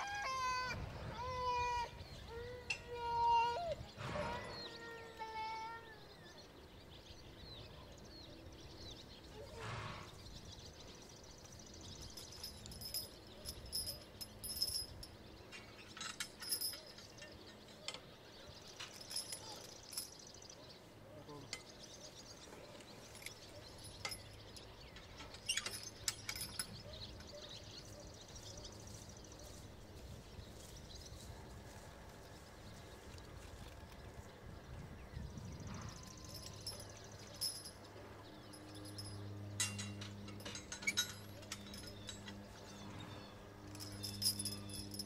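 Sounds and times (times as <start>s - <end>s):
birds chirping: 0.0s - 45.0s
metallic harness clinks: 11.3s - 28.0s, 35.6s - 45.0s.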